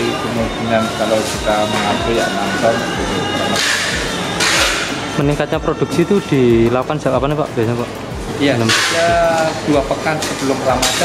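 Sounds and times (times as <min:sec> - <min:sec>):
background music with held tones: 0:00.0 - 0:11.0.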